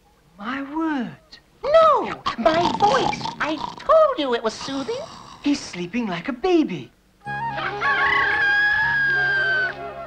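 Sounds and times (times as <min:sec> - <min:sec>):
background music: 0:07.2 - 0:10.0
rooster crowing: 0:07.8 - 0:10.0.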